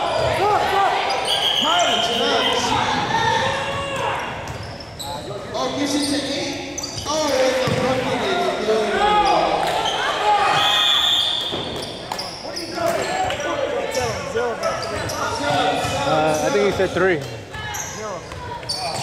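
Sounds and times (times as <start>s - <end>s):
sneakers squeaking: 0.0s - 8.4s, 9.0s - 19.0s
basketball bouncing on hardwood floor: 7.6s - 7.8s.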